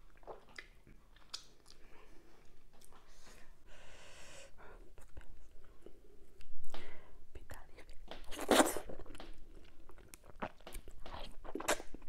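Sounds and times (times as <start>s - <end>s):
woman whispering: 7.3s - 8.0s.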